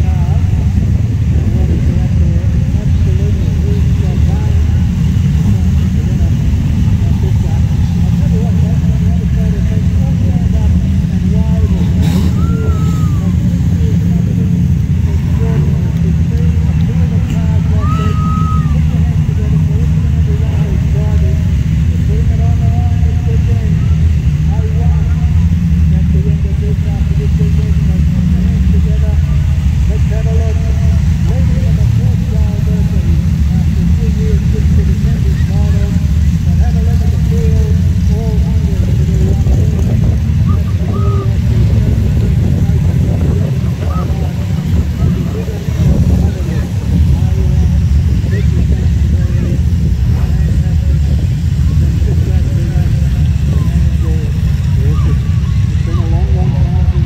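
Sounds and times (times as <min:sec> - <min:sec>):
car engines rumbling: 0:00.0 - 0:57.0
indistinct voices: 0:00.0 - 0:57.0.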